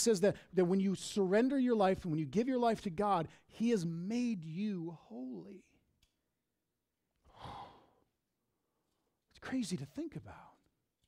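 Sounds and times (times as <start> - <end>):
man sighing: 7.3 - 8.0.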